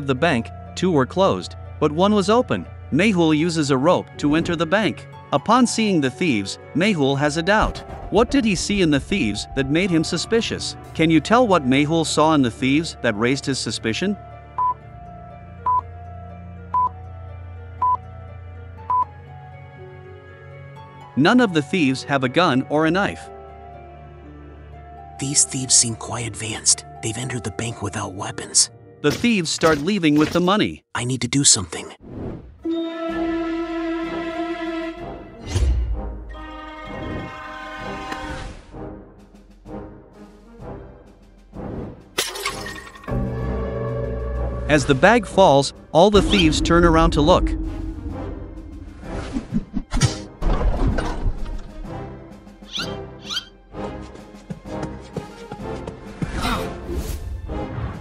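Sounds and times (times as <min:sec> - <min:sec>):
soft background music: 0:00.0 - 0:30.4, 0:32.6 - 0:58.0.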